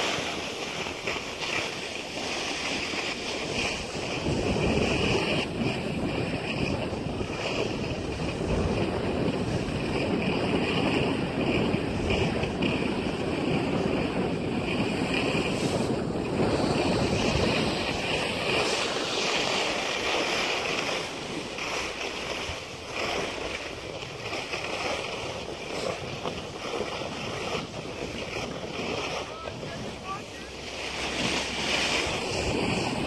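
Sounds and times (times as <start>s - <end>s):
sliding over packed snow: 0.0s - 33.0s
wind on microphone: 0.0s - 33.0s.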